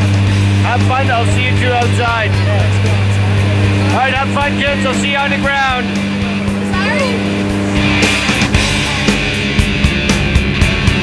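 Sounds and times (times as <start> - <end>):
aircraft engine and propeller drone: 0.0 - 11.0.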